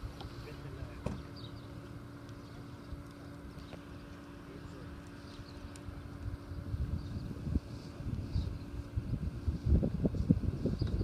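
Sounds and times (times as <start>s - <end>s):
faint steady hum: 0.0s - 11.0s
wind buffeting microphone: 5.9s - 11.0s.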